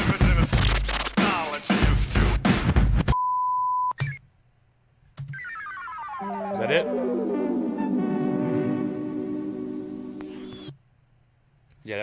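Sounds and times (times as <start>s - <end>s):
high electronic beep: 10.3s - 10.8s.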